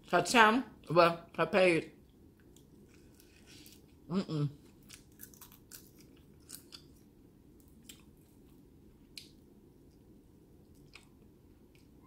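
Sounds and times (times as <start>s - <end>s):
chewing crisp food: 2.0s - 12.0s.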